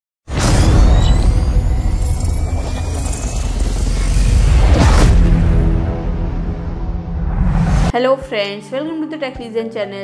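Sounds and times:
deep rumbling bass drone: 0:01.4 - 0:07.9.

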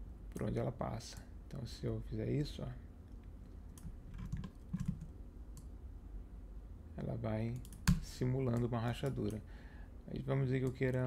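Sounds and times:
low steady hum: 0:00.0 - 0:11.0
keyboard and mouse clicks: 0:03.7 - 0:05.7.

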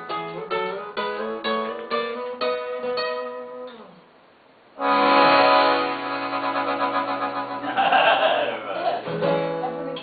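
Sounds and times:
accordion holding a chord: 0:04.8 - 0:07.8
person speaking: 0:07.8 - 0:09.1.

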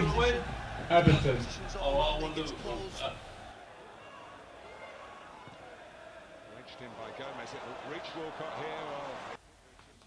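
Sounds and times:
commentator's voice: 0:00.0 - 0:03.3, 0:06.5 - 0:09.4
stadium crowd noise: 0:00.0 - 0:10.0.

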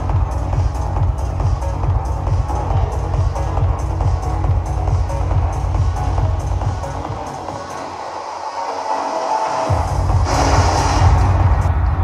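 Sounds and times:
trance music over sound system: 0:00.0 - 0:12.0.

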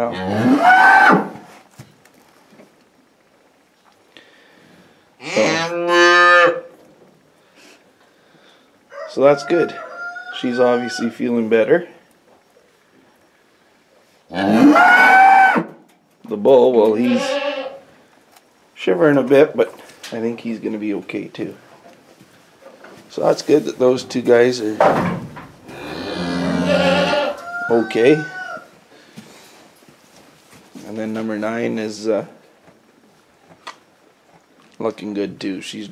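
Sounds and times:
cow mooing: 0:00.1 - 0:01.4, 0:05.2 - 0:06.7, 0:14.3 - 0:15.7, 0:25.7 - 0:27.4.

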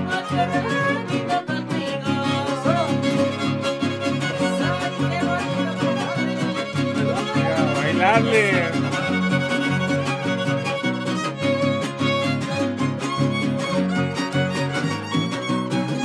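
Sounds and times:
strummed guitar chords: 0:00.0 - 0:16.0
violin melody with slides: 0:00.0 - 0:16.0.

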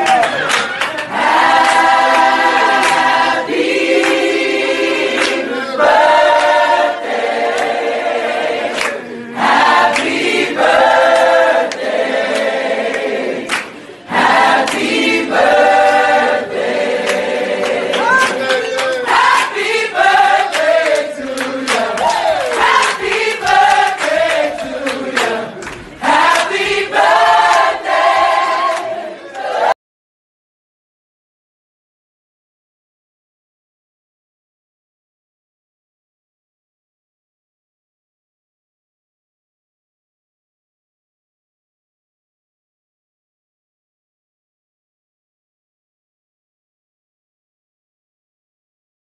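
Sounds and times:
choir singing held chords: 0:00.2 - 0:29.8.

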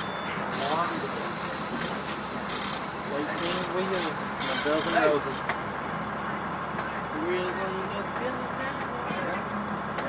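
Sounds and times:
diesel bus engine idling: 0:00.0 - 0:10.0.

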